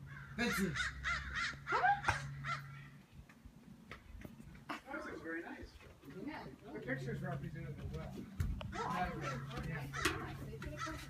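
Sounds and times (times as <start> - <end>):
high-pitched animal cries: 0.4 - 2.9.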